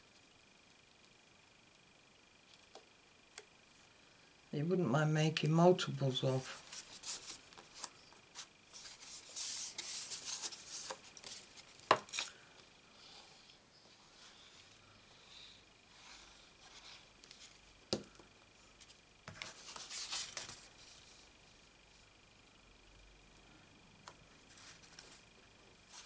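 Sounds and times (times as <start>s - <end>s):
paper sliding and rubbing: 6.4s - 12.2s, 19.3s - 21.2s.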